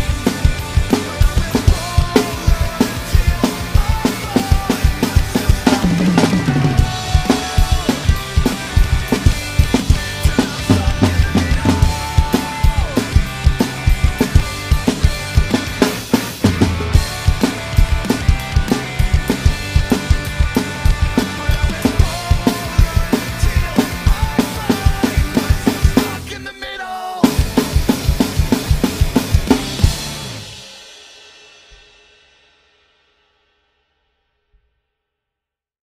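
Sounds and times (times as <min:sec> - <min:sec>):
drum kit playing: 0:00.0 - 0:26.4, 0:27.2 - 0:32.5
backing music track: 0:00.0 - 0:30.7.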